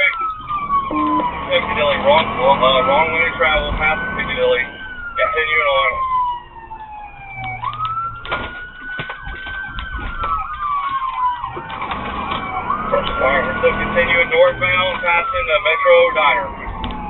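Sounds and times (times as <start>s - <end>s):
faster cycling siren: 0.0s - 17.0s
police siren wailing: 0.0s - 17.0s.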